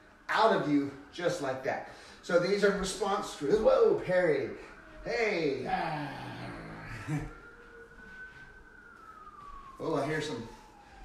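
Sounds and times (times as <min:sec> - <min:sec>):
distant police siren wailing: 0:00.0 - 0:11.0.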